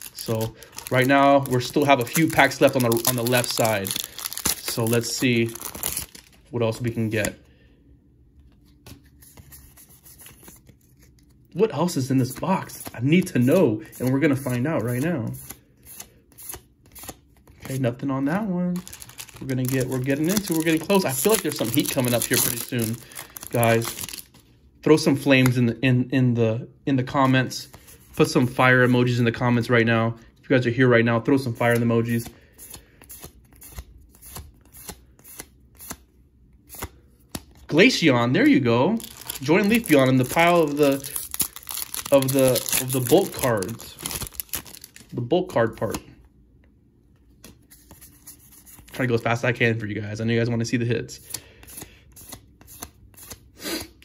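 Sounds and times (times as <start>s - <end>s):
trading cards being shuffled: 0.0s - 6.4s, 18.8s - 24.4s, 39.0s - 46.0s.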